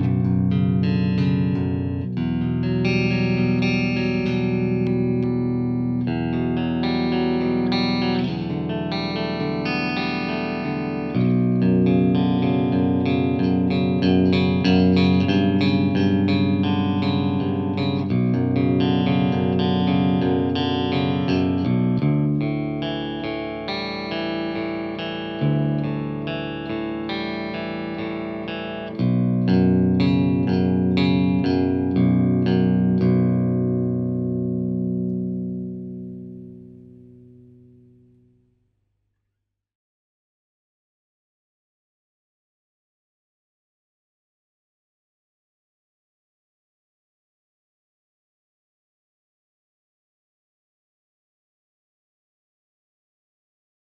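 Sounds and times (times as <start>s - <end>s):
clean electric guitar chords: 0.0s - 38.4s.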